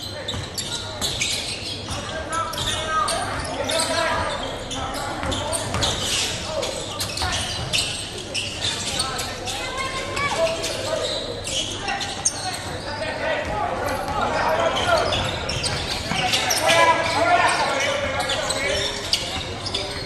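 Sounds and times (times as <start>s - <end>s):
voices echoing in hall: 0.0s - 20.0s
basketball bouncing on court: 5.1s - 6.0s.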